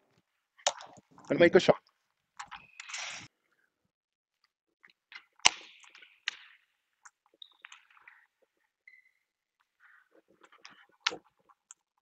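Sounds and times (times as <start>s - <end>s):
sports shoes squeaking and tapping: 2.4s - 3.2s, 7.3s - 11.2s.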